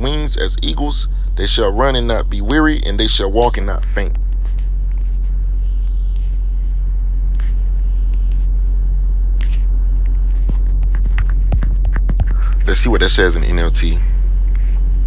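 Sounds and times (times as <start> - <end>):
steady low rumbling hum: 0.0 - 15.0.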